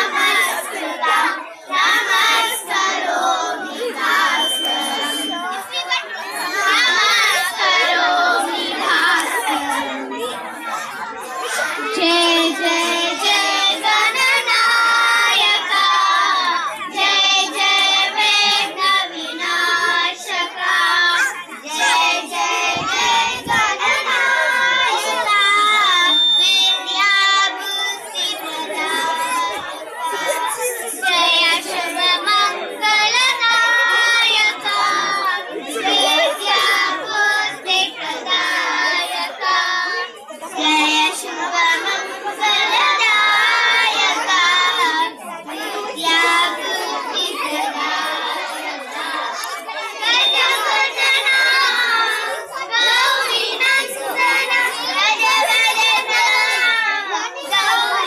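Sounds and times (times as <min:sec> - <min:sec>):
children singing a hymn: 0:00.0 - 0:58.0.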